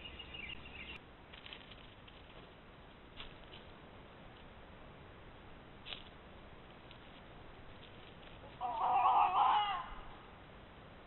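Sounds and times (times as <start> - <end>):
loud animal call: 8.6 - 10.2.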